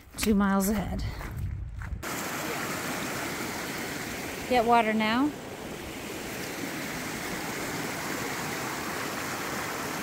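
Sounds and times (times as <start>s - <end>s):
creek running over rocks: 2.0s - 10.0s.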